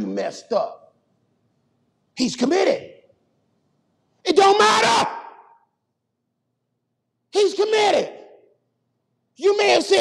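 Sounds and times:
man preaching with room echo: 0:00.0 - 0:01.1, 0:02.1 - 0:03.2, 0:04.1 - 0:05.9, 0:07.2 - 0:10.0
faint room hum: 0:00.0 - 0:10.0.

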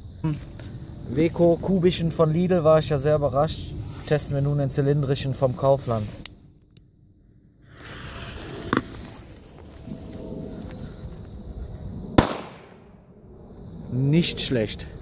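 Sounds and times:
firecracker fuse hissing: 0:07.7 - 0:09.6
firecracker bang: 0:12.2 - 0:12.8.

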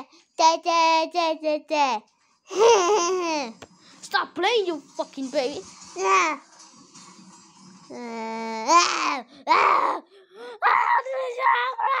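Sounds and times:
child wailing: 0:08.6 - 0:12.0.

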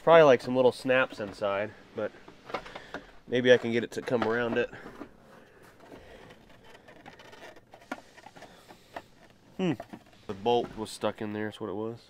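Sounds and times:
plastic cover scraping: 0:00.0 - 0:11.2.

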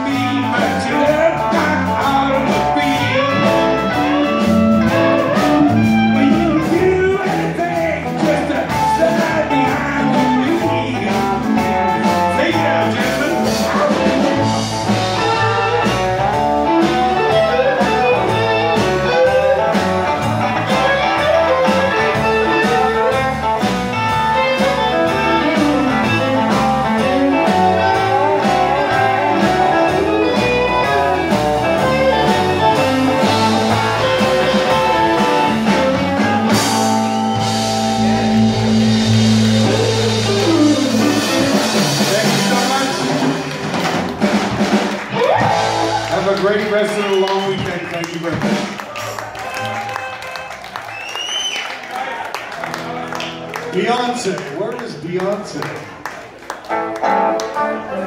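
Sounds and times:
sustained guitar chords: 0:00.0 - 0:44.3
blues band playing: 0:00.0 - 0:58.0.

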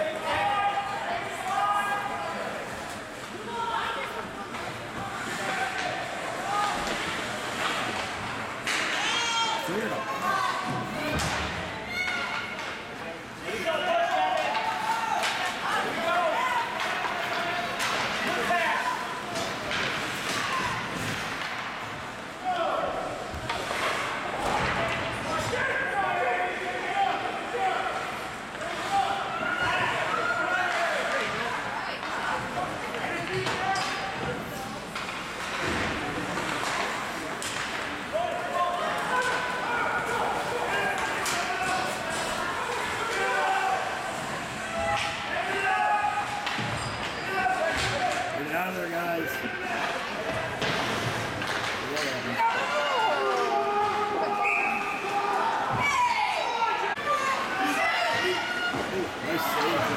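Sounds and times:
spectators talking and calling out: 0:00.0 - 0:59.9
hockey sticks and puck clacking: 0:02.7 - 0:09.5, 0:14.0 - 0:22.4, 0:27.9 - 0:48.3, 0:49.4 - 0:55.3.

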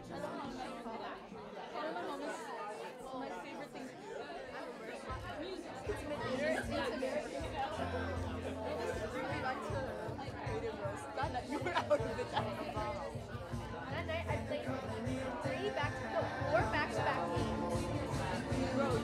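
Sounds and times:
chatter of voices: 0:00.0 - 0:19.0
music with low bass line: 0:13.5 - 0:19.0.

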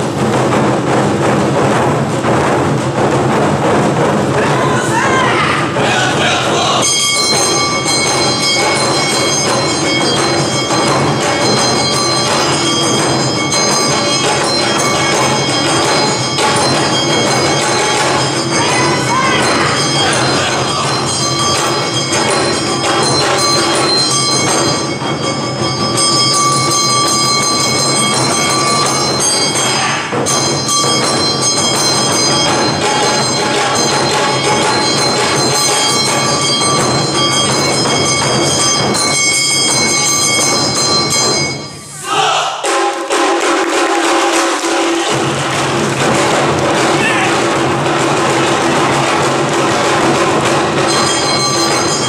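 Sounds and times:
hand drums beating: 0:00.0 - 0:41.8, 0:42.6 - 0:52.0
metal hand gong ringing: 0:06.8 - 0:41.9, 0:50.0 - 0:52.0.

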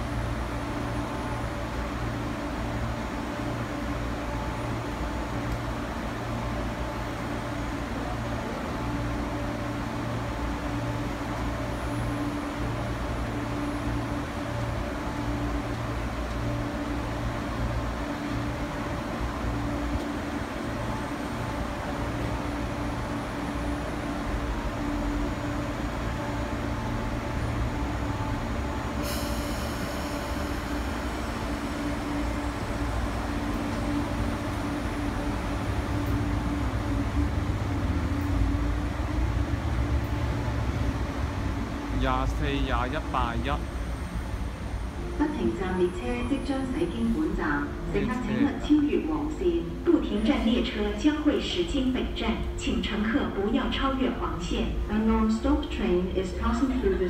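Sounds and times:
train equipment humming: 0:00.0 - 0:57.0.

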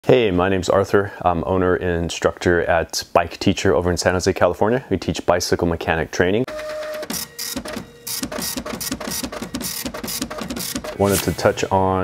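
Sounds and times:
rapid mechanical clicking: 0:07.0 - 0:11.4.

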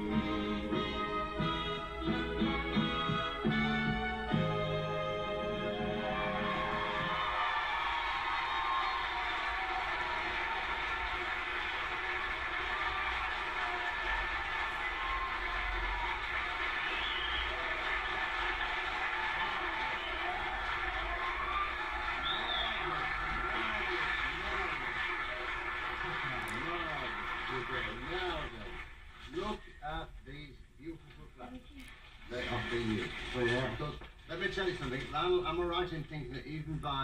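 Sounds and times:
dance music: 0:00.0 - 0:07.4
audience applauding and cheering: 0:00.0 - 0:29.4.

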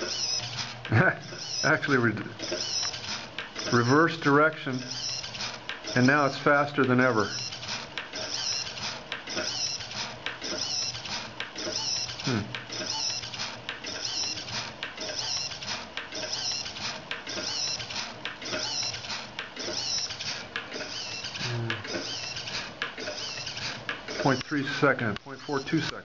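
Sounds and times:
gyro wheel running on rails: 0:00.0 - 0:26.0
servo whirring and clicking: 0:00.0 - 0:26.0.

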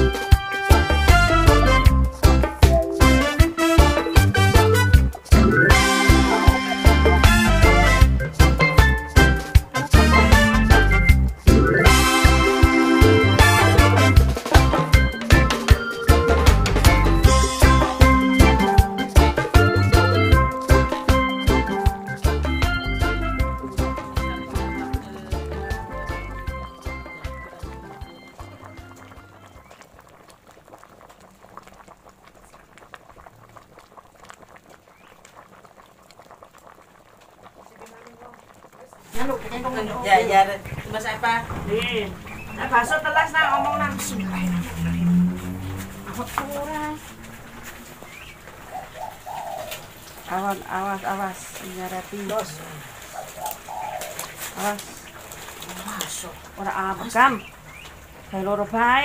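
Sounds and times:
food frying in hot oil: 0:00.0 - 0:16.1, 0:16.8 - 0:59.0
music: 0:00.0 - 0:29.7
dove cooing: 0:42.1 - 0:50.3, 0:52.7 - 0:56.1.

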